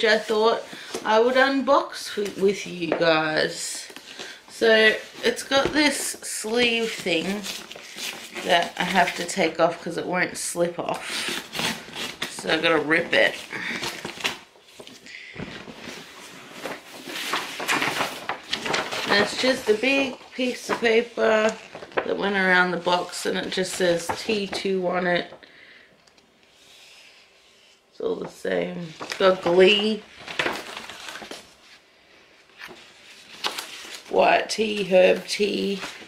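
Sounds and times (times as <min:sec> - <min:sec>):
paper tearing and crinkling: 0:11.0 - 0:14.4, 0:15.6 - 0:22.2, 0:29.0 - 0:31.6, 0:32.6 - 0:34.2.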